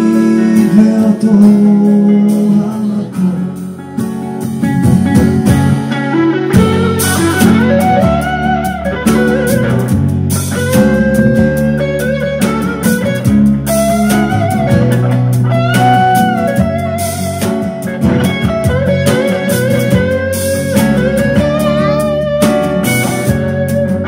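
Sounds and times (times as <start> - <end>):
acoustic guitar strumming: 0.0 - 24.0
electric bass: 0.0 - 24.0
electric guitar bluesy lead: 0.0 - 24.0.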